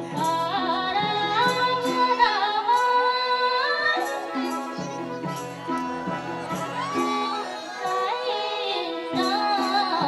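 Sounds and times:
woman singing a long high note: 6.7s - 10.0s.

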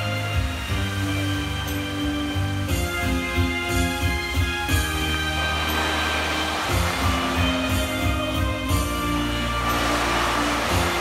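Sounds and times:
fountain water jets spraying: 0.0s - 11.0s
show music: 0.0s - 11.0s.

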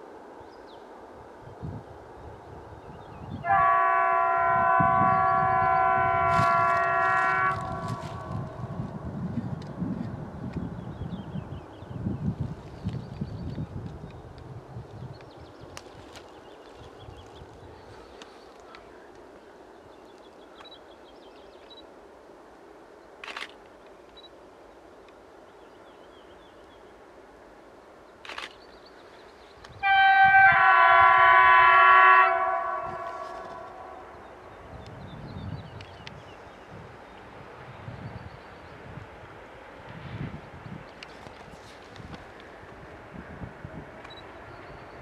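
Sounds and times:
distant locomotive rumble: 0.0s - 12.4s, 29.0s - 45.0s
locomotive horn blast: 3.4s - 8.7s, 29.8s - 34.2s.

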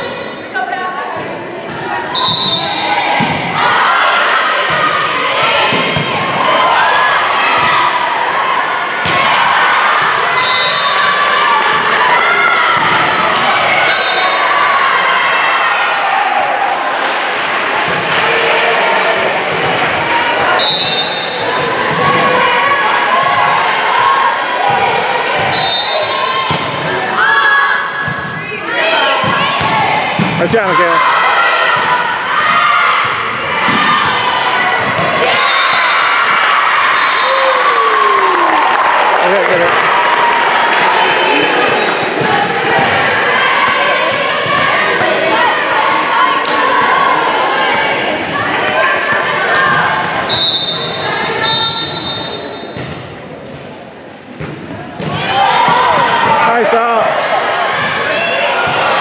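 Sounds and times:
people calling and cheering: 0.0s - 59.0s
volleyball hits: 1.6s - 3.6s, 4.6s - 6.6s, 9.0s - 9.4s, 12.6s - 13.9s, 24.7s - 27.0s, 29.1s - 30.8s, 31.6s - 36.6s.

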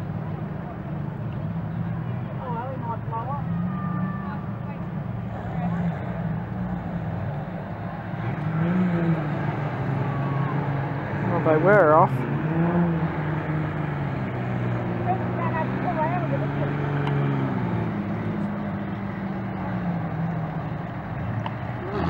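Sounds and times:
racing car engines: 0.0s - 22.0s.

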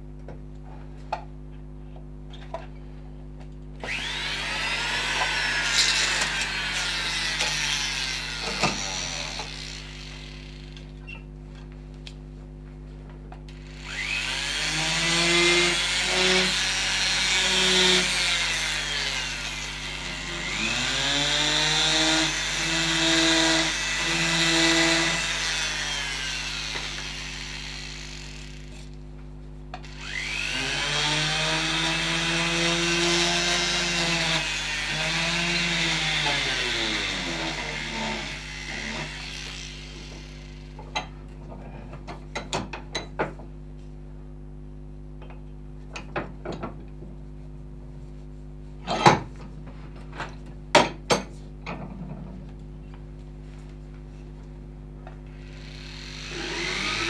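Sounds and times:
rotary tool grinding wood: 3.8s - 11.0s, 13.5s - 29.0s, 29.8s - 40.8s, 55.3s - 57.0s.

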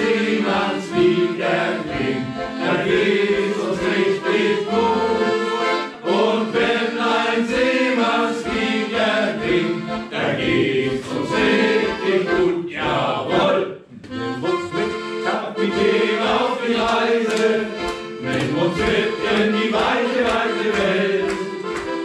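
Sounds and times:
piano accordion playing chords: 0.0s - 22.0s.

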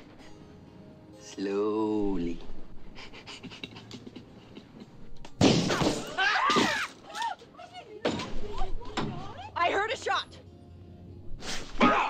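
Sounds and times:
people shouting and grunting: 5.7s - 10.2s, 11.5s - 12.0s.

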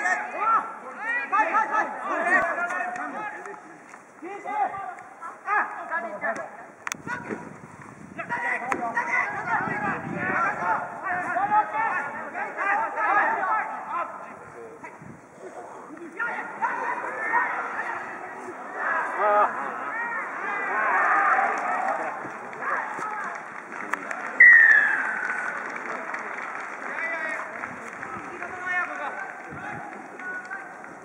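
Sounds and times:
players and spectators shouting: 0.0s - 3.4s, 8.2s - 14.3s, 15.6s - 23.4s, 24.2s - 26.1s
low crowd hubbub: 0.0s - 31.0s
people shouting: 16.2s - 23.2s.

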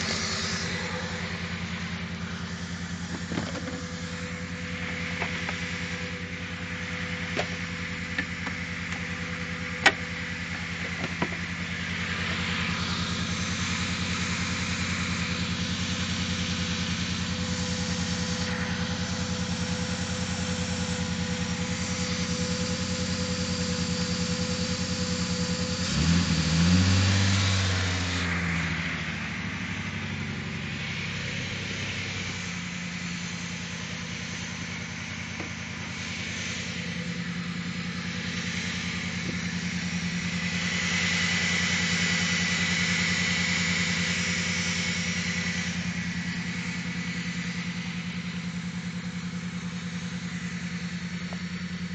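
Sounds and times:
car engine idling and revving: 0.0s - 51.9s.

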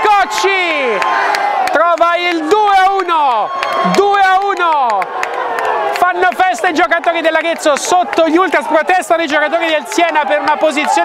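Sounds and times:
man shouting long cries: 0.0s - 1.0s, 1.8s - 5.0s
crowd cheering: 0.0s - 11.0s.

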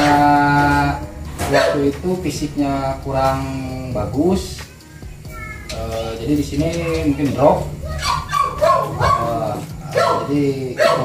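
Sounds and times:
dog whining: 7.8s - 9.4s.

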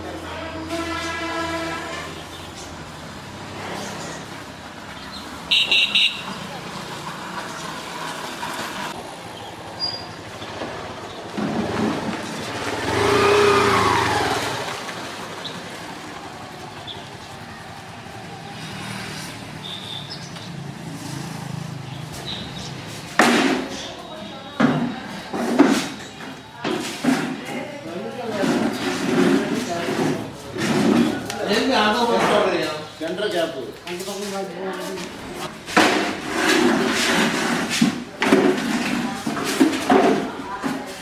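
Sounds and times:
vehicle passing: 0.0s - 23.2s
car horn toots: 5.5s - 6.3s.

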